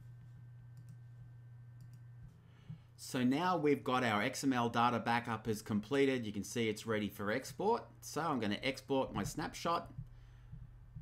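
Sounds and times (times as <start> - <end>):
low steady hum: 0.0 - 11.0
faint clicks: 1.8 - 2.4.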